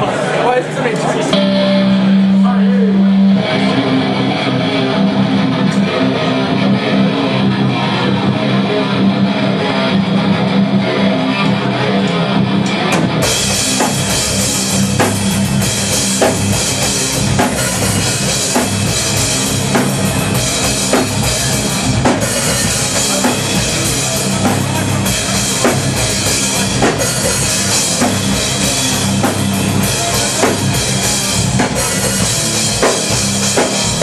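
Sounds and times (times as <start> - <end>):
drums: 0.0 - 34.0
heavy electric guitar: 1.0 - 34.0.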